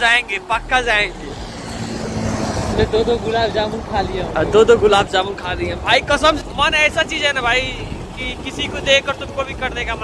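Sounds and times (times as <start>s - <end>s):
car passing on highway: 0.0s - 8.2s.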